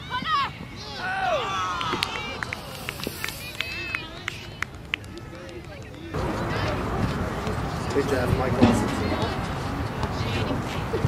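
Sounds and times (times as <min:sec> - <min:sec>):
people shouting outdoors: 0:00.0 - 0:02.8.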